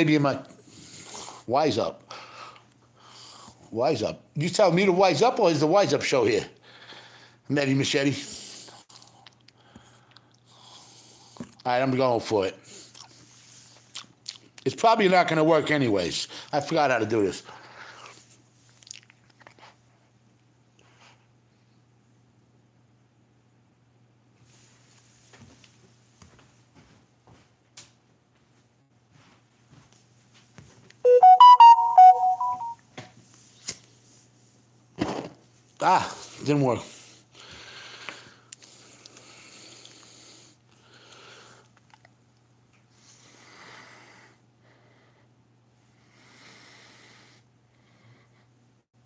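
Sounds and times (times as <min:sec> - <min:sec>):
low electrical hum: 0:00.0 - 0:49.0.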